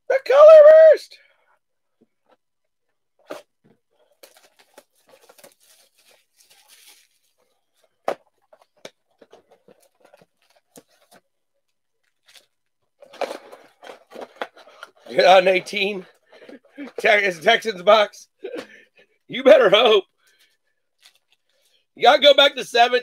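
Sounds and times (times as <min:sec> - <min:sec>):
wrapped packs rustling: 0:03.3 - 0:11.3
packaging crinkling and tearing: 0:04.0 - 0:17.0, 0:21.0 - 0:21.7.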